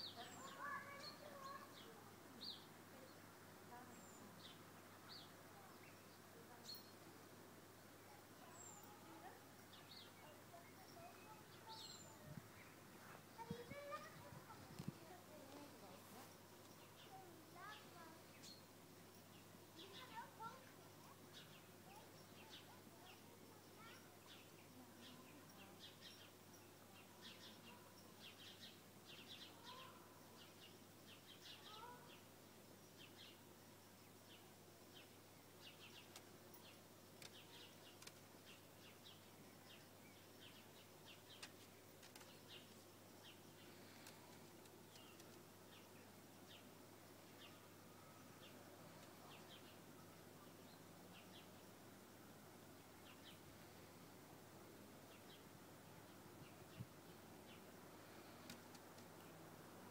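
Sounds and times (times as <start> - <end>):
quiet bird chirps: 0.0 - 59.9.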